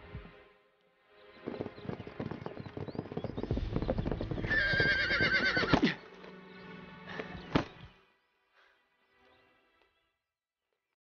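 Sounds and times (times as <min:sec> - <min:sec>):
horse hoofbeats: 0:01.2 - 0:06.3
horse whinnying: 0:04.3 - 0:06.0.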